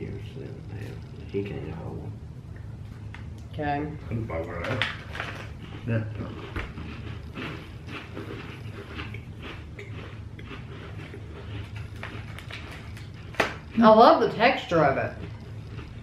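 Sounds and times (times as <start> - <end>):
people chewing crisp cookies: 0.0 - 3.4, 4.1 - 16.0
low steady hum: 0.0 - 16.0.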